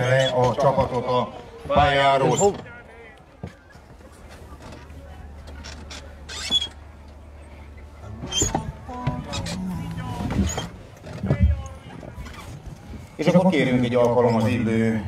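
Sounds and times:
low voices: 0.0s - 15.0s
carriage creaking and squeaking: 4.3s - 13.4s.

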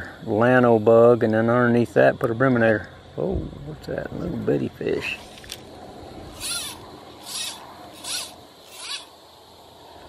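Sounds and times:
fly line zipping through rod guides: 6.3s - 9.2s.

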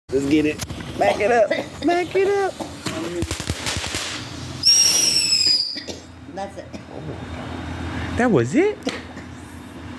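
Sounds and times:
firework fountain hissing: 2.2s - 5.8s
shrill firework whistle: 4.6s - 5.8s.

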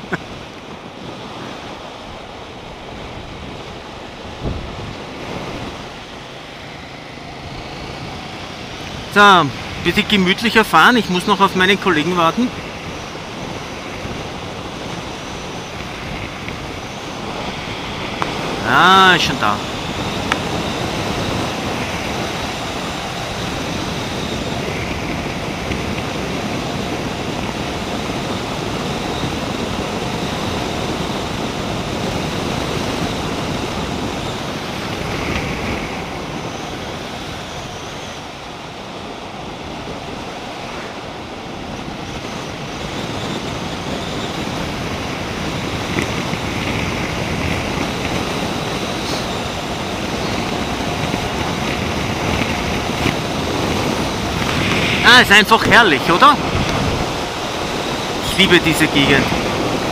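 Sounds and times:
tyres on road: 0.0s - 59.9s
wind buffeting microphone: 0.0s - 59.9s
motorcycle engine: 2.2s - 9.9s, 12.5s - 18.8s.

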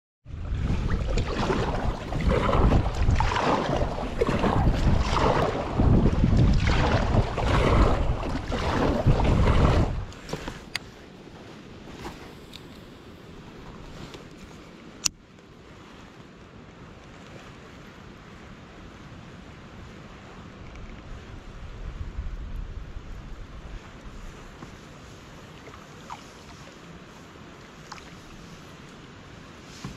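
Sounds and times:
wind buffeting microphone: 0.2s - 10.8s, 20.2s - 25.4s
water lapping: 0.3s - 16.6s, 23.0s - 29.9s
paddle splashing water: 0.3s - 21.4s, 23.1s - 29.9s.

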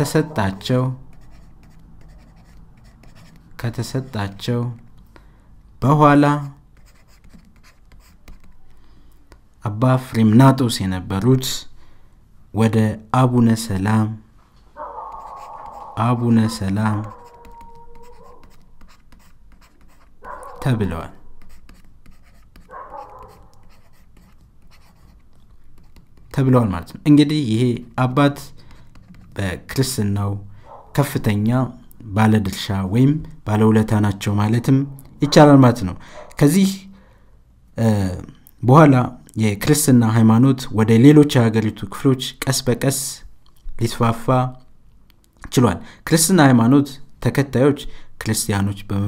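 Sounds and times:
pen scratching on paper: 0.0s - 4.2s, 6.4s - 9.3s, 15.0s - 26.5s, 28.7s - 29.4s
person speaking: 0.0s - 4.9s, 12.5s - 37.0s.

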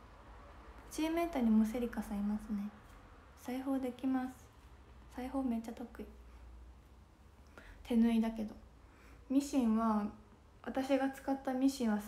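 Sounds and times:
woman speaking: 0.8s - 4.5s, 5.1s - 6.2s, 7.8s - 8.7s, 9.3s - 12.0s
soft breath: 6.2s - 7.9s, 8.7s - 9.3s.

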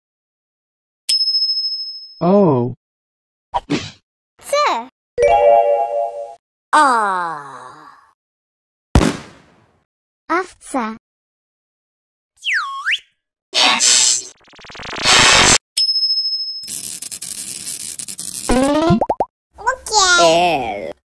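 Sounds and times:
cartoon whistle: 12.4s - 14.3s.

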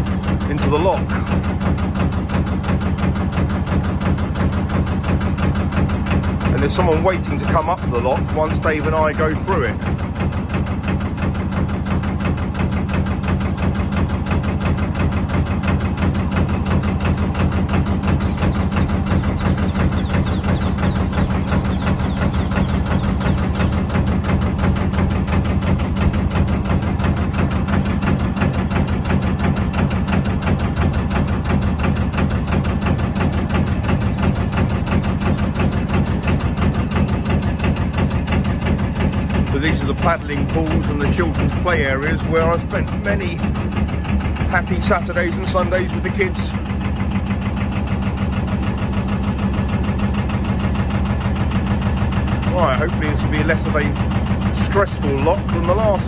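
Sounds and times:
boat diesel engine running: 0.0s - 56.0s.

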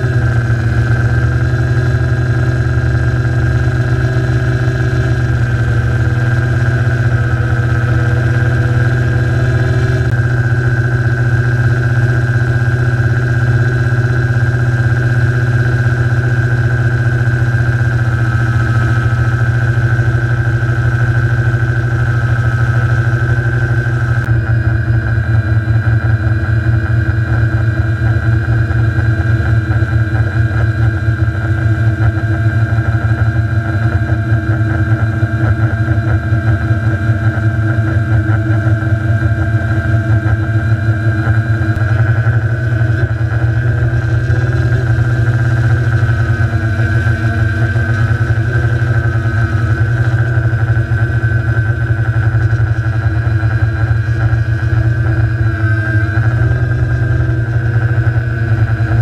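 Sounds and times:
drone motors humming: 0.0s - 59.0s
high-pitched propeller whine: 0.0s - 59.0s.

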